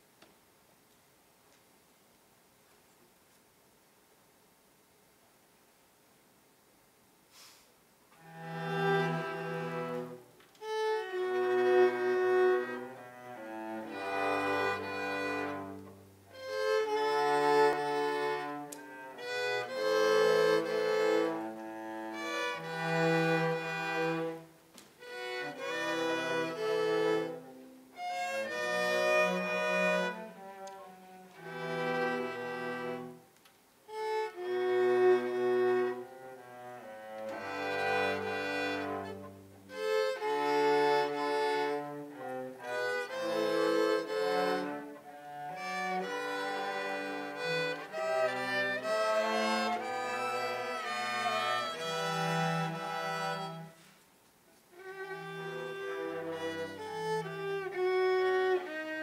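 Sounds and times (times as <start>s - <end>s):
violas playing: 8.1s - 54.0s, 54.6s - 59.0s
low cello notes: 8.1s - 59.0s.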